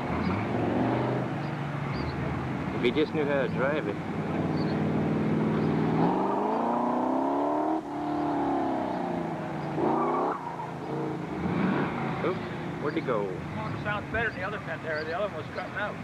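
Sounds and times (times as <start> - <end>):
sports car engine revving: 0.0 - 15.1.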